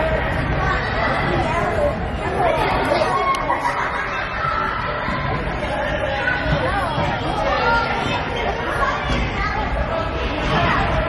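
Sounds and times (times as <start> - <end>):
general murmur of voices: 0.0 - 11.0
voices chattering and calling out: 0.0 - 11.0.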